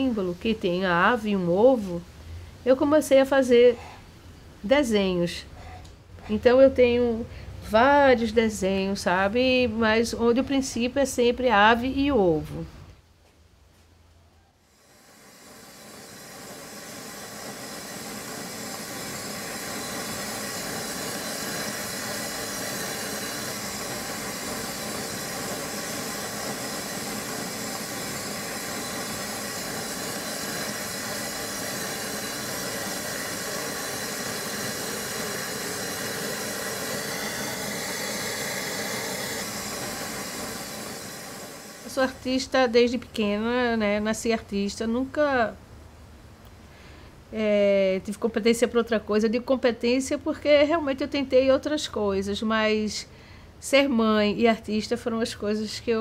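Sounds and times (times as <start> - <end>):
gas flame hissing: 14.6 - 43.5.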